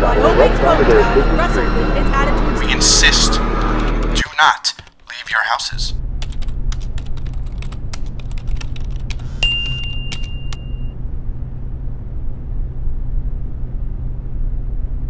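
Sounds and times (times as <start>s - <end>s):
steady low rumble: 0.0s - 4.3s, 5.1s - 15.0s.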